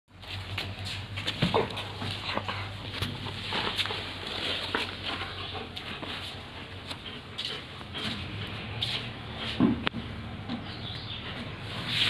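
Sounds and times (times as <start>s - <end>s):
dog play noises: 0.2s - 11.9s.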